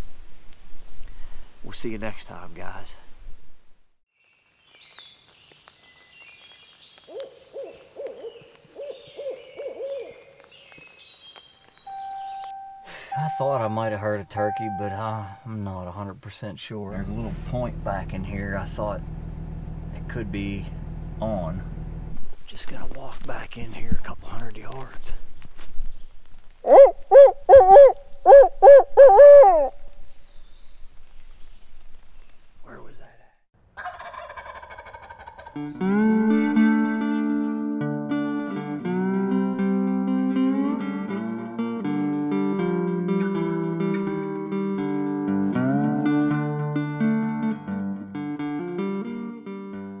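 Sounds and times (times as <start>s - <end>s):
bird calls: 4.2s - 15.5s
background guitar music: 11.8s - 15.8s, 35.5s - 50.0s.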